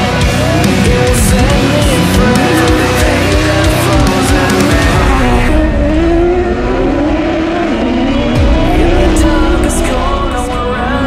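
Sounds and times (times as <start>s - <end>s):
buggy engines racing: 0.0s - 11.0s.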